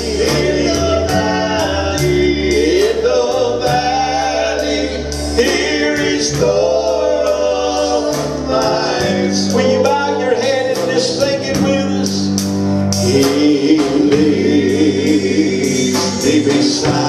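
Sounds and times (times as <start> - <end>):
bass and keyboard notes: 0.0 - 17.0
gospel singing: 0.0 - 17.0.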